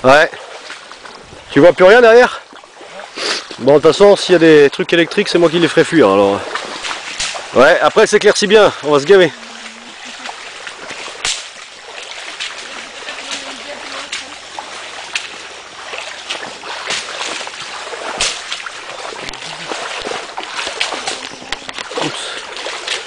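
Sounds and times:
footsteps wading through water: 0.0s - 23.0s.

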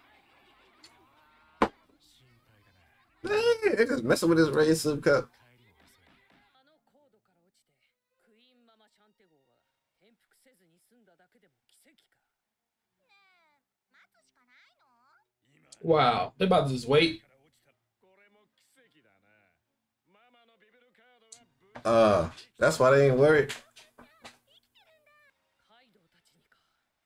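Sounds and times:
faint high-pitched cartoon voices: 0.0s - 4.4s, 13.0s - 15.9s, 21.8s - 25.8s.

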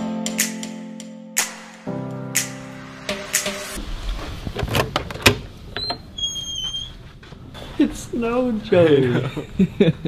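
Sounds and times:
door squealing: 5.8s - 7.0s.

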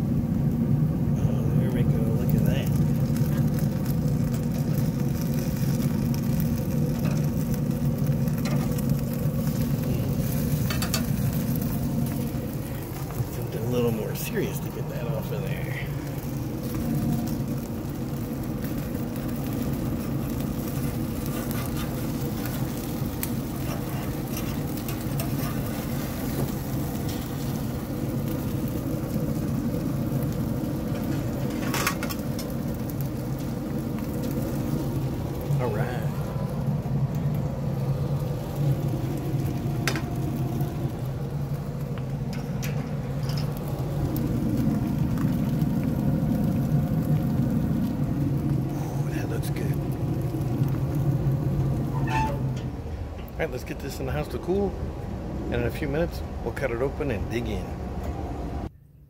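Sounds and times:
smoker humming: 0.0s - 59.0s.

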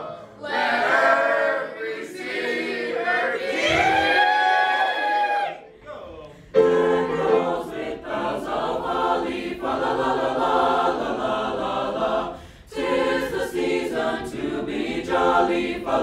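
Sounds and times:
choir singing in harmony: 0.0s - 4.0s, 6.5s - 16.0s.

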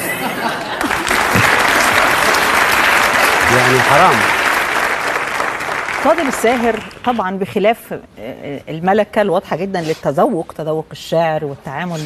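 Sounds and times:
studio audience applauding: 0.6s - 7.4s.

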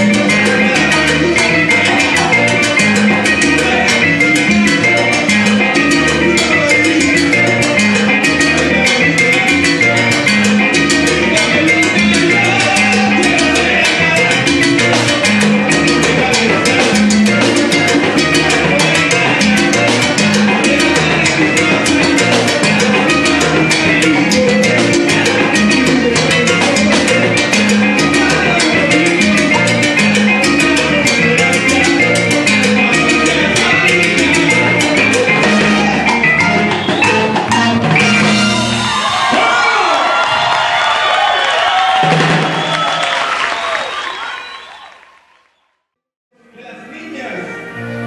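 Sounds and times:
electric bass notes: 0.0s - 39.2s, 46.4s - 48.0s
percussion strikes: 0.0s - 40.8s, 41.8s - 43.1s
salsa band playing: 0.0s - 44.8s, 46.4s - 48.0s.

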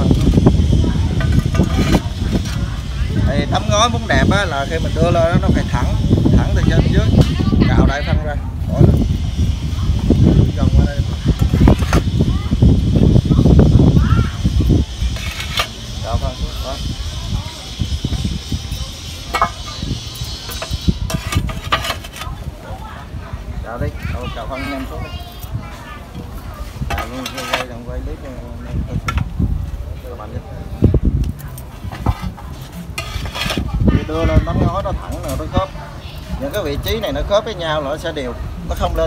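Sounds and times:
compost scraping and thudding: 0.0s - 3.1s, 11.1s - 12.7s, 15.0s - 16.0s, 19.3s - 22.5s, 31.6s - 35.6s
compost scraping and knocking: 0.0s - 7.5s, 10.1s - 13.3s, 14.4s - 16.2s, 16.8s - 22.5s, 26.2s - 29.7s, 31.2s - 35.7s.

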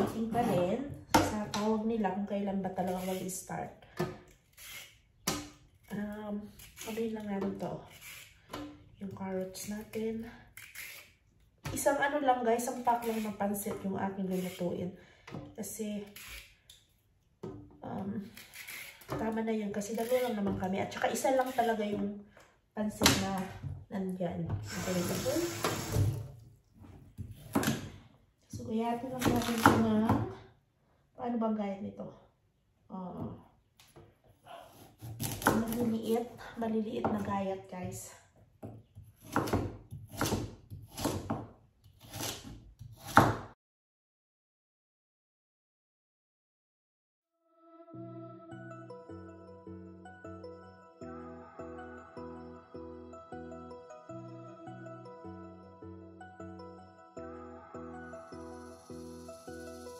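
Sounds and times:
person speaking: 0.0s - 3.5s, 22.9s - 25.6s
knife cutting broccoli: 39.0s - 43.4s.

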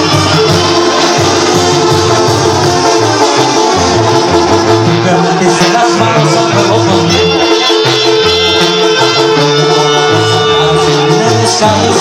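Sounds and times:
live band music over loudspeakers: 0.0s - 12.0s.

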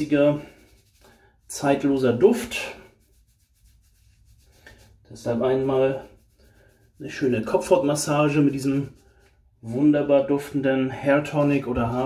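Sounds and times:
fingers rubbing damp hair: 0.0s - 9.4s.

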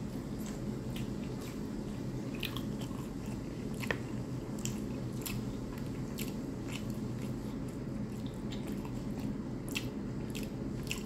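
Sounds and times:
person chewing food: 0.1s - 11.0s.

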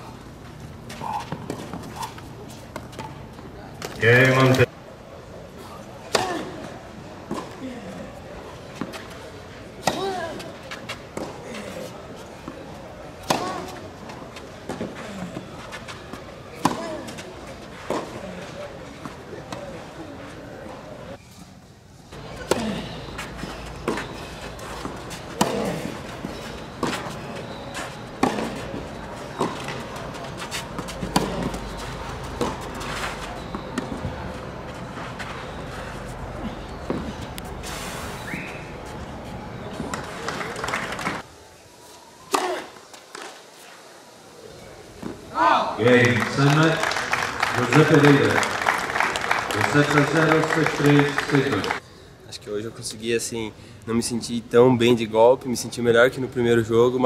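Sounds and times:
tennis ball hit with rackets: 9.8s - 10.2s, 13.2s - 13.8s, 16.6s - 17.0s, 22.4s - 27.6s, 28.2s - 32.8s, 42.3s - 43.3s.

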